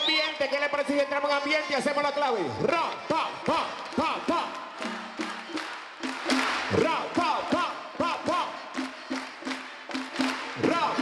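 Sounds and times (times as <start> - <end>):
hand-clapping beat: 2.6 - 11.0.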